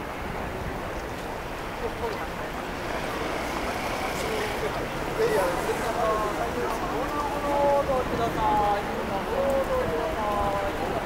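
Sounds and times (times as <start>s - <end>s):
low rumble of traffic: 0.0s - 11.0s
passers-by talking indistinctly: 0.0s - 11.0s.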